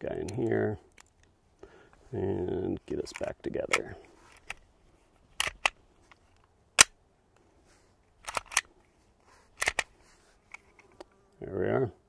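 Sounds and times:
pistol slide metallic clicks: 5.4s - 5.8s, 6.8s - 7.0s, 8.2s - 8.7s, 9.6s - 9.9s.

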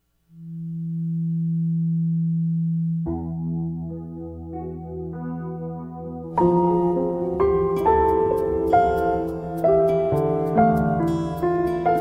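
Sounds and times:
background music: 0.2s - 12.0s.

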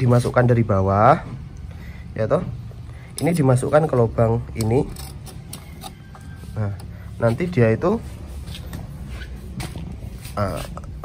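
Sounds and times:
cable scraping against metal: 3.2s - 7.8s.

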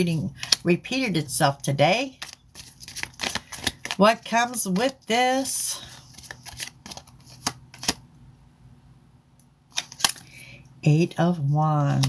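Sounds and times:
cards clicking and snapping: 0.4s - 0.6s, 2.2s - 4.0s, 6.0s - 8.0s, 9.7s - 10.3s.

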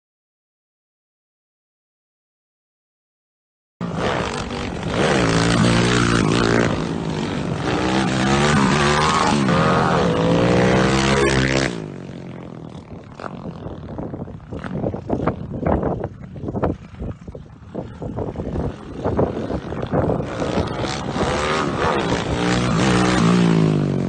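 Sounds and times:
motorcycle engine accelerating hard: 3.8s - 24.0s.

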